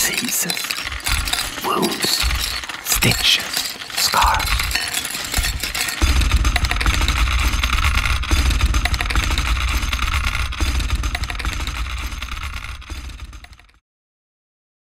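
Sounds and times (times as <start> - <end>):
low rumbling drone: 5.4 - 13.3
dense crackling noise: 5.4 - 13.6.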